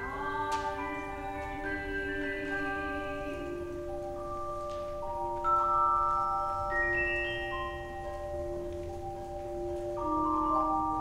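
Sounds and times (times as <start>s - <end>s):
celesta notes: 0.0s - 11.0s.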